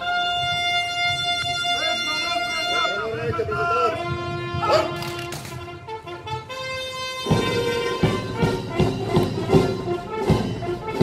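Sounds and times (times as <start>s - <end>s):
brass band playing: 0.0s - 11.0s
steady drum beat: 7.2s - 11.0s.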